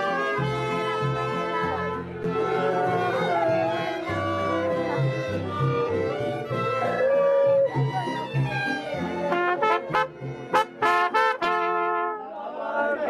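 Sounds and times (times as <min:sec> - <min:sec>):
mariachi band playing: 0:00.0 - 0:13.0
short sharp trumpet notes: 0:09.3 - 0:12.2.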